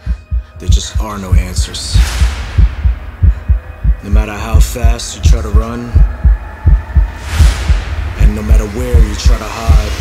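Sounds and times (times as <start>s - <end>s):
low rapid heartbeat thumps: 0.0s - 10.0s.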